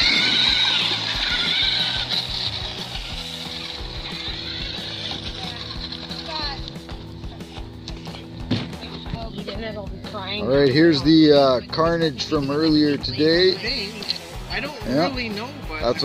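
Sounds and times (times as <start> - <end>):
toy truck motor whining: 0.0 - 8.3.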